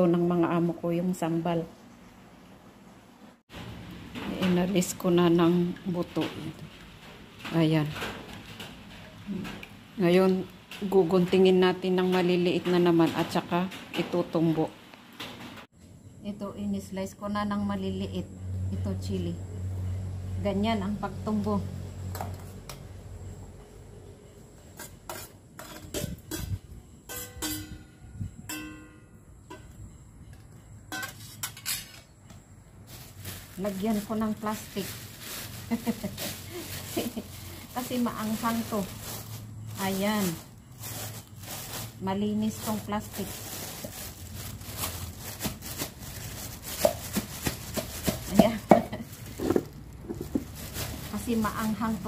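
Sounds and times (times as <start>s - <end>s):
metallic ring: 27.1s - 29.2s
pestle pounding in a mortar: 46.8s - 48.9s.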